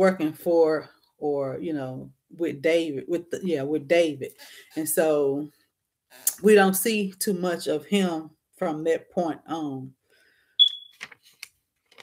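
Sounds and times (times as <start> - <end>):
high-pitched electronic beep: 10.6 - 11.0.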